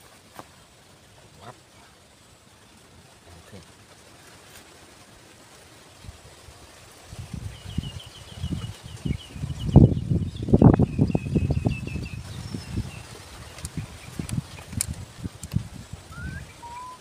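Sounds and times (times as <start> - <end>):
wind rumbling on microphone: 4.9 - 17.0
bird chirping: 7.5 - 14.8, 16.1 - 17.0.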